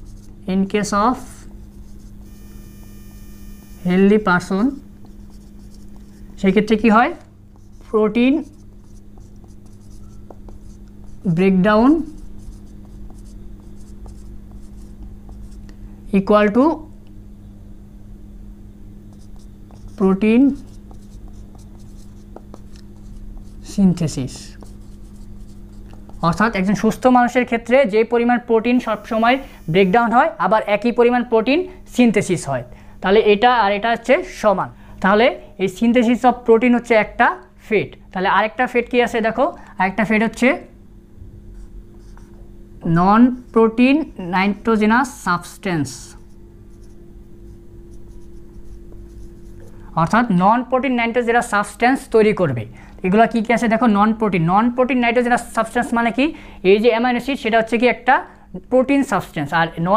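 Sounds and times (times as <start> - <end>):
marker scratching on whiteboard: 0.0 - 0.4, 1.2 - 2.4, 4.4 - 15.6, 19.1 - 26.9, 41.6 - 42.4, 45.9 - 50.3
steady low hum: 0.0 - 59.9.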